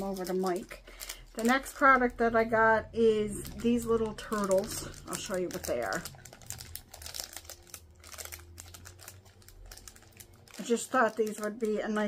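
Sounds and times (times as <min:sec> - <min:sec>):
plastic packet crinkling: 0:00.0 - 0:02.5, 0:03.2 - 0:12.0.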